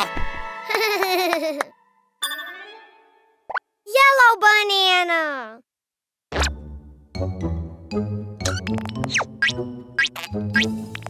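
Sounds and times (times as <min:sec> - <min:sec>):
cartoon pop effect: 0:06.3 - 0:06.6, 0:08.4 - 0:10.8.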